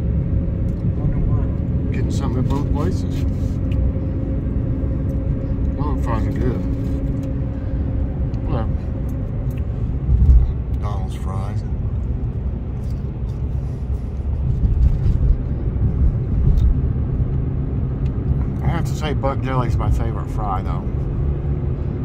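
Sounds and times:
car cabin road and engine rumble: 0.0s - 22.0s.

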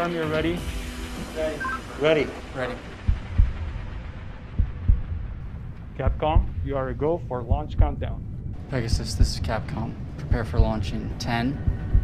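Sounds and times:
steady low hum: 0.6s - 12.0s
heartbeat thumps: 2.7s - 12.0s.

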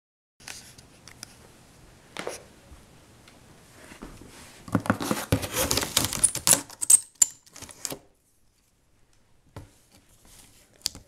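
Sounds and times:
scissors and hands on cardboard box: 4.8s - 6.9s.

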